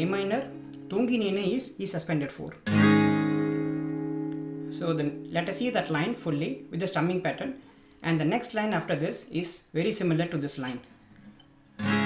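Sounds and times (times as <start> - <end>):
acoustic guitar chord ringing: 0.0 - 1.8, 2.6 - 7.8, 11.3 - 12.0
person speaking: 0.0 - 2.6, 4.7 - 10.9.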